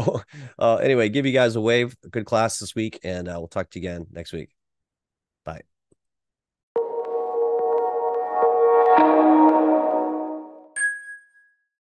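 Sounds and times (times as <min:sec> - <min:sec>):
ambient music: 0:06.8 - 0:10.8
bright electronic ding: 0:09.5 - 0:11.6.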